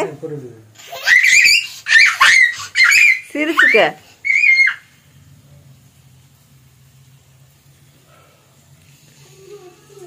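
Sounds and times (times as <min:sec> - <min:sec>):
young child squealing: 0:00.8 - 0:04.9.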